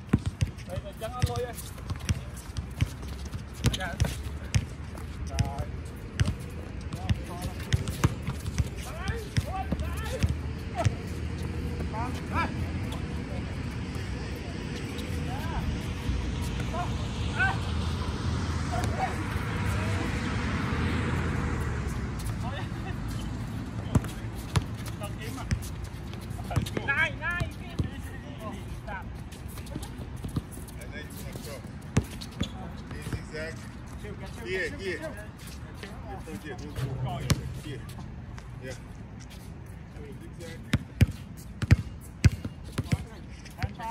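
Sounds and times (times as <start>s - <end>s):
basketball dribbling on hard court: 0.1s - 0.4s, 41.0s - 43.1s
broad rushing noise: 6.8s - 27.2s
distant shouts: 8.7s - 24.1s.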